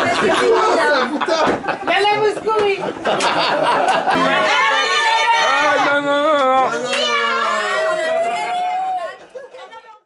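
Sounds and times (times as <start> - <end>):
people chattering: 0.0 - 10.0
person holding high note: 4.2 - 4.8.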